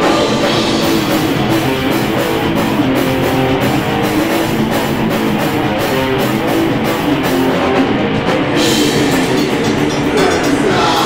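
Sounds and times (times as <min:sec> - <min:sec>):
distorted electric guitars: 0:00.0 - 0:11.0
fast drumming: 0:00.0 - 0:11.0.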